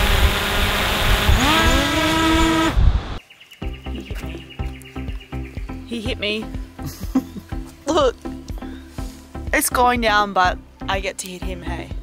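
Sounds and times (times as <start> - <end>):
drone propeller whirr: 0.0 - 3.2
motor whine rising in pitch: 0.0 - 3.2.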